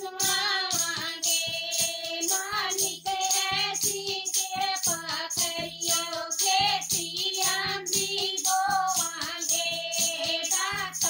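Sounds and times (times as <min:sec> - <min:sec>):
hand drum beat: 0:00.0 - 0:11.0
jingling hand percussion: 0:00.0 - 0:11.0
women singing together: 0:00.0 - 0:11.0.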